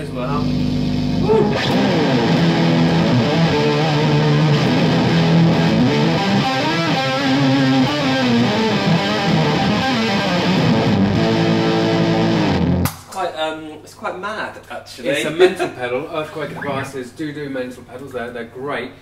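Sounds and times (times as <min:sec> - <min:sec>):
pitch-shifted electric guitar: 0:00.0 - 0:12.9.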